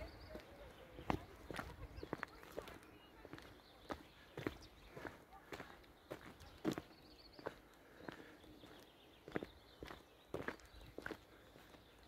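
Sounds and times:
faint footsteps: 0:00.0 - 0:12.0.

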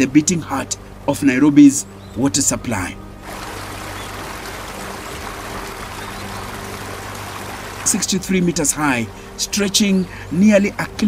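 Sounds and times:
sustained low music tones: 0:00.0 - 0:11.0
steady rushing noise: 0:03.2 - 0:08.2.

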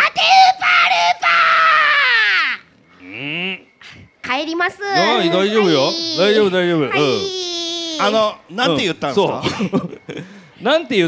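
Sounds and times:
woman shrieking: 0:05.0 - 0:08.3.

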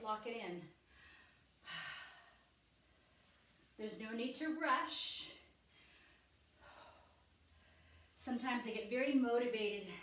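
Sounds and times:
woman breathing out: 0:00.9 - 0:02.5.

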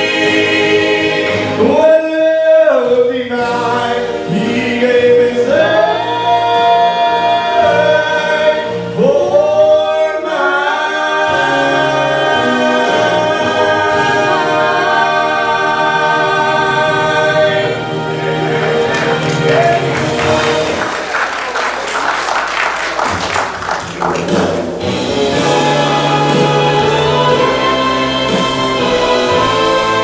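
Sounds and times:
vocal group singing in harmony: 0:00.0 - 0:21.1, 0:24.6 - 0:30.0.

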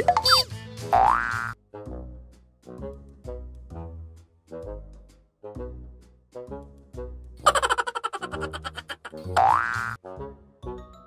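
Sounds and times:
springy boing rising in pitch: 0:09.3 - 0:10.0.

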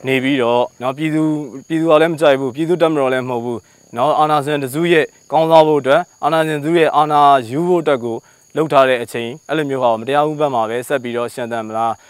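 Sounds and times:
high-pitched insect drone: 0:00.0 - 0:12.0
man speaking: 0:00.0 - 0:12.0.

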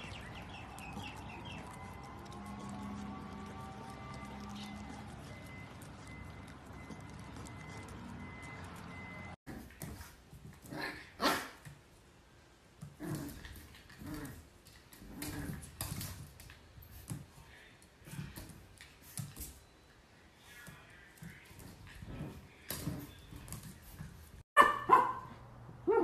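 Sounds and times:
low background hum: 0:00.0 - 0:26.0
puppy barking and yipping: 0:24.6 - 0:26.0.

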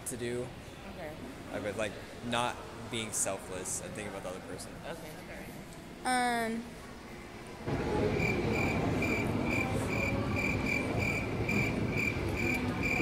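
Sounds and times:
crickets chirping: 0:08.2 - 0:13.0.

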